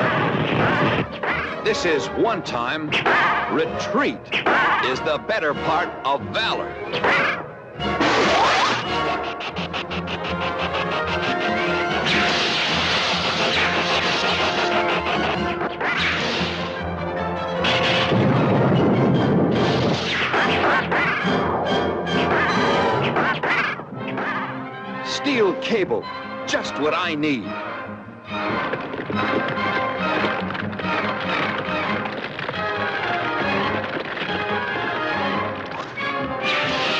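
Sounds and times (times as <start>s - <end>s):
cartoon action music: 0.0s - 36.9s
heavy rushing crash: 8.0s - 16.8s
rapid ticking: 8.7s - 16.8s, 28.4s - 36.0s.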